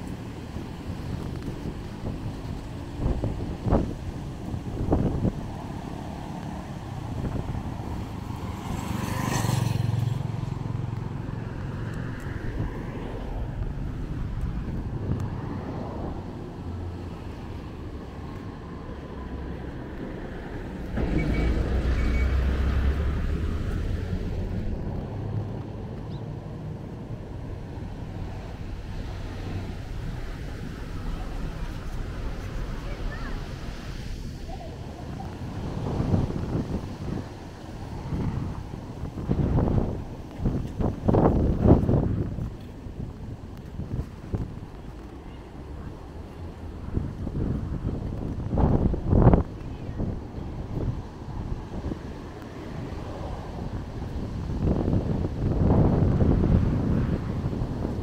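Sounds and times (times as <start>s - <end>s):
motor vehicles passing: 0.0s - 58.0s.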